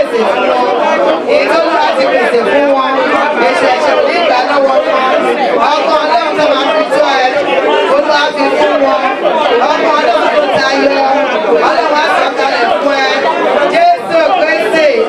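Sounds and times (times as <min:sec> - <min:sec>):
people praying aloud: 0:00.0 - 0:15.0
woman speaking through microphone: 0:00.0 - 0:15.0.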